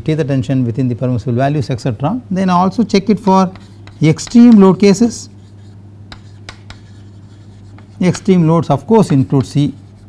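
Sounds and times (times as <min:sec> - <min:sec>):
low steady hum: 0:00.0 - 0:10.0
chalk tapping on board: 0:03.4 - 0:04.8, 0:05.4 - 0:10.0
chalk scratching on chalkboard: 0:03.4 - 0:10.0.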